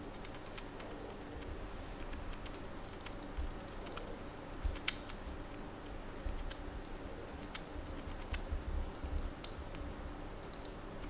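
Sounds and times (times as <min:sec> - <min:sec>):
chipmunk chewing clicks: 0:00.0 - 0:06.7, 0:07.3 - 0:11.0.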